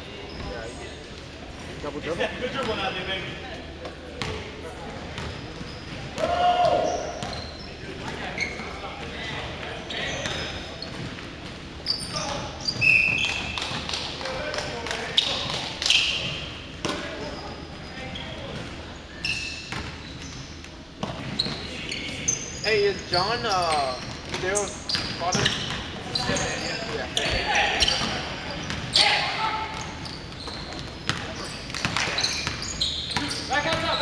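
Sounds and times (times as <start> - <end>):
shoe squeaks: 0.1 - 0.8, 5.2 - 8.9, 9.8 - 11.1, 11.8 - 13.7, 15.0 - 34.0.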